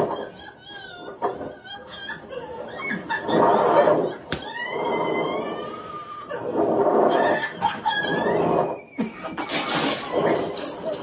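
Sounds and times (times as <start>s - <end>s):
high-pitched shrieks: 4.4s - 11.0s.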